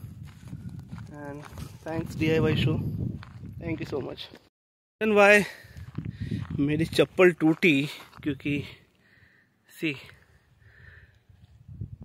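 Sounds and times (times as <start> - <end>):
footsteps on rocky ground: 0.0 - 4.5, 5.3 - 8.8.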